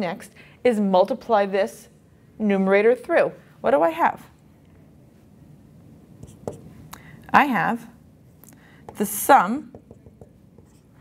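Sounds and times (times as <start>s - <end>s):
marker writing on whiteboard: 6.2s - 6.8s, 8.9s - 11.0s.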